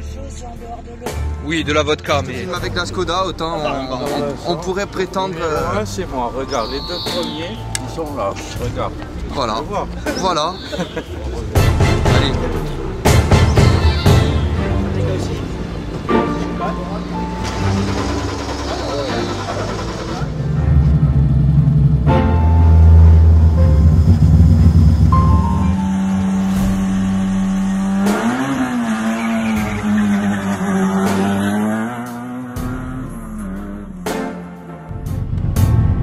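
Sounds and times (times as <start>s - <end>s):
music: 0.0s - 36.0s
rally car engines at full throttle: 2.0s - 13.8s, 14.4s - 36.0s
car engine revving through gears: 15.2s - 36.0s.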